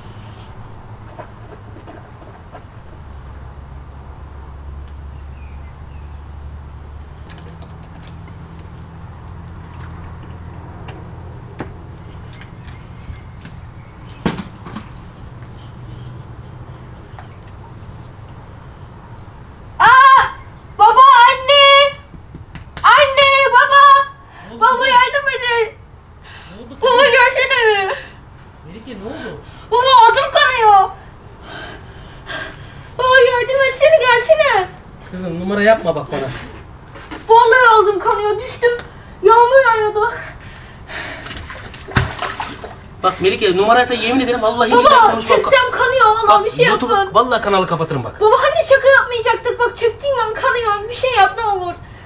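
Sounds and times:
small knock: 0:22.1 - 0:22.9
body thudding on stone: 0:41.3 - 0:42.4.

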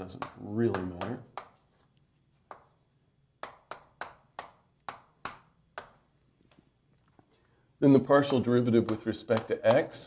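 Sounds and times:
sharp taps on a board: 0:00.2 - 0:01.5, 0:03.4 - 0:06.0, 0:08.8 - 0:09.8.

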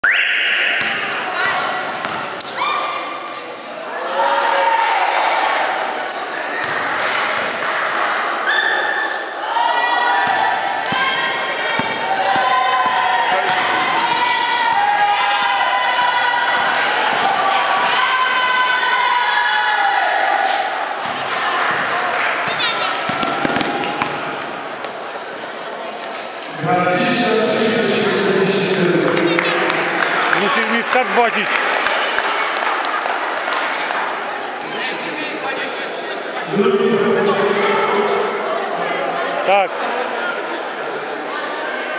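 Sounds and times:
basketball bouncing on floor: 0:22.4 - 0:24.2.

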